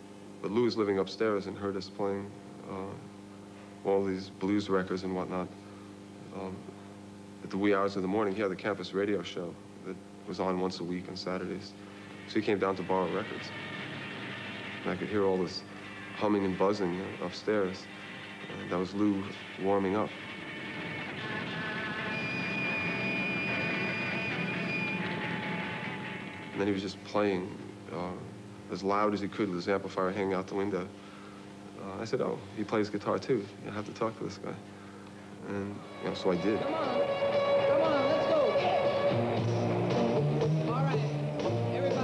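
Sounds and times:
steady high whine: 0.0 - 42.0
droning rock music: 12.0 - 26.9, 35.8 - 42.0
electric guitar: 35.8 - 42.0
person singing: 35.9 - 39.6.

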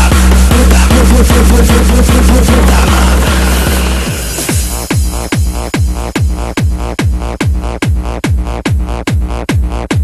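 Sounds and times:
noisy electronic upper layer: 0.0 - 7.8
deep bass drone: 0.0 - 10.0
distorted kick drum pounding: 0.0 - 10.0.

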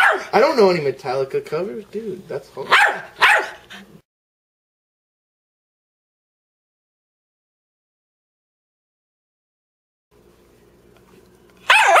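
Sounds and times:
dog barking: 0.0 - 0.4, 2.7 - 3.8, 11.7 - 12.0.

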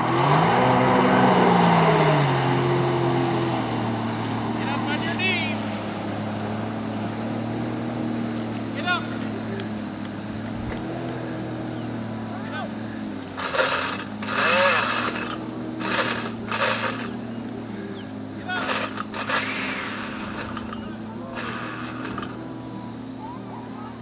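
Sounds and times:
jet ski engine revving: 0.0 - 24.0
water spray rushing: 13.3 - 17.2, 18.4 - 22.4.

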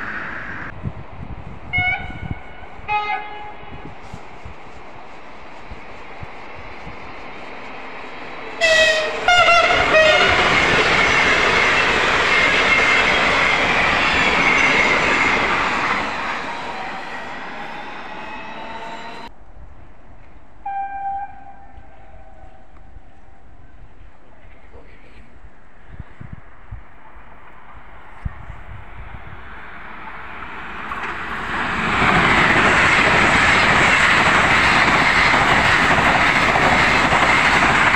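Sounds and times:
high-speed train rushing past: 0.0 - 24.6, 25.6 - 37.9
train horn blasts: 1.7 - 3.8, 8.5 - 10.6, 20.6 - 22.8.

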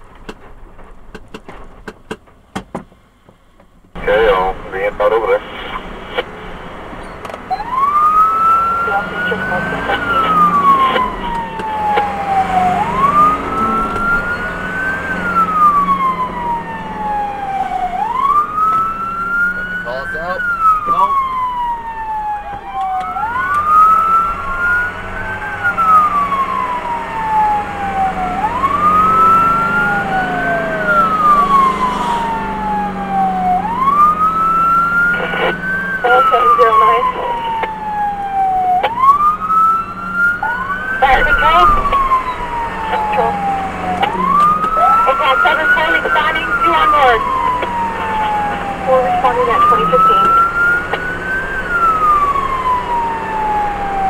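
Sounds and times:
engine and road noise: 0.0 - 54.0
siren wailing: 4.0 - 54.0.

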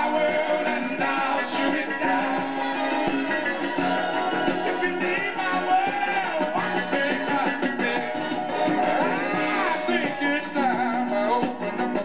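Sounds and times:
pop song on record player: 0.0 - 12.0.

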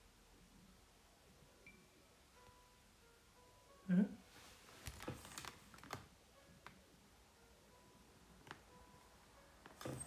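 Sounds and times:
faint clicks and taps: 8.4 - 8.8.

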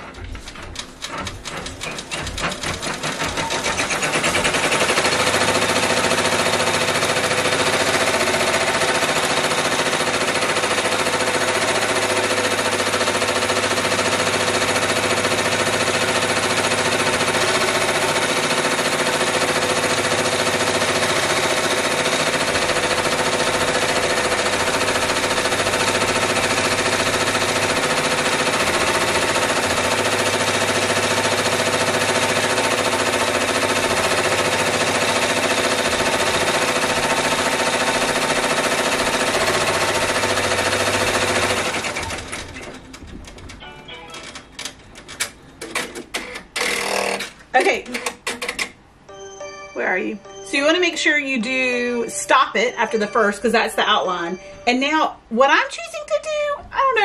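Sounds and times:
embroidery machine stitching: 0.0 - 48.8.

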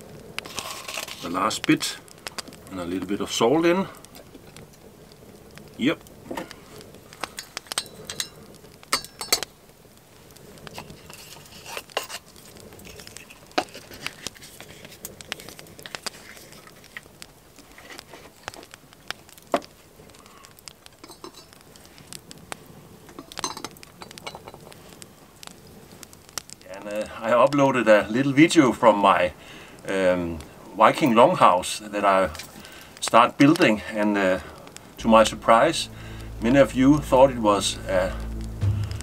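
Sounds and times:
wood fire crackling: 0.0 - 39.0
metallic clinks of iron pot: 7.4 - 9.5, 21.0 - 21.5, 23.2 - 24.6.

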